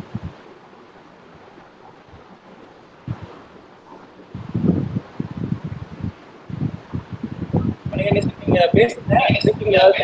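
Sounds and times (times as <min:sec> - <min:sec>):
muffled microphone rumbling and rustling: 0:00.0 - 0:10.0.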